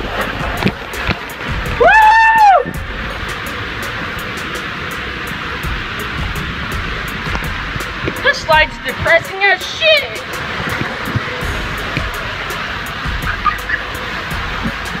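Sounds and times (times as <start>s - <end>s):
water rushing through slide tube: 0.0s - 15.0s
person yelling: 1.8s - 2.7s.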